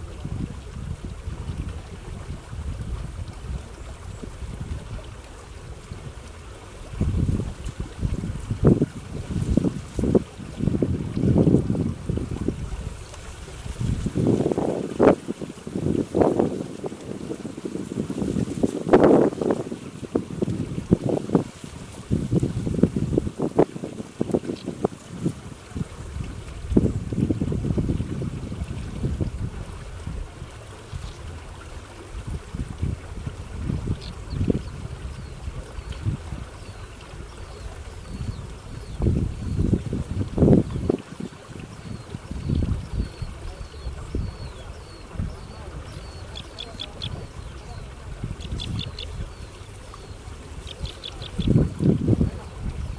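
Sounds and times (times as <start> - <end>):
wind buffeting microphone: 0.0 - 52.9.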